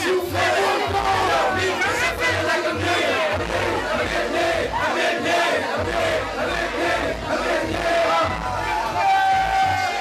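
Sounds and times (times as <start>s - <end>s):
crowd voices: 0.0s - 10.0s
hip-hop beat with bass: 0.0s - 10.0s.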